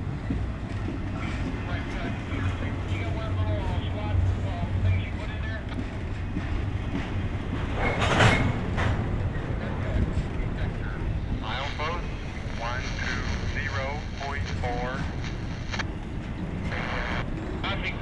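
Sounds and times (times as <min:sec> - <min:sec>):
freight train wheels rumbling on rails: 0:00.0 - 0:15.2, 0:15.8 - 0:18.0.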